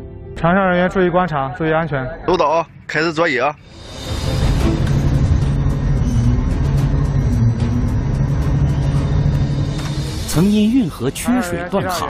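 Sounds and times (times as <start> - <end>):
crane hoist droning: 3.6 - 11.7.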